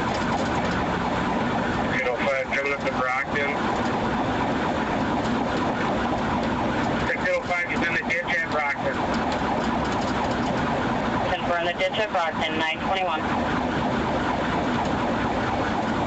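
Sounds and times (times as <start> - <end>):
car engine and road noise: 0.0 - 16.0
police siren: 0.0 - 16.0.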